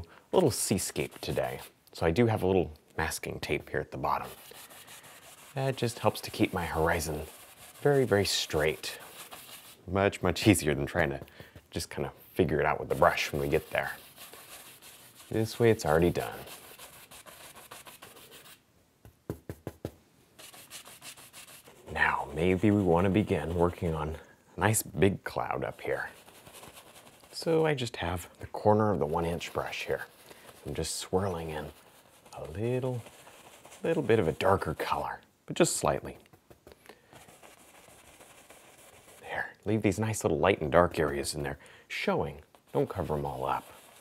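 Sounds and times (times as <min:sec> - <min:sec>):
brush scrubbing on canvas: 0:00.5 - 0:01.8, 0:04.0 - 0:12.0, 0:12.8 - 0:18.6, 0:20.4 - 0:24.2, 0:25.4 - 0:35.2, 0:35.8 - 0:39.6, 0:42.5 - 0:44.0
brush hitting canvas: 0:04.2 - 0:09.8, 0:12.9 - 0:23.6, 0:36.0 - 0:39.2.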